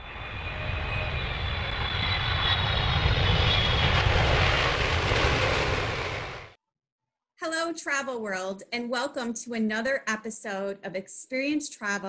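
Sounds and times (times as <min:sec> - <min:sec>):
airplane passing: 0:00.0 - 0:06.6.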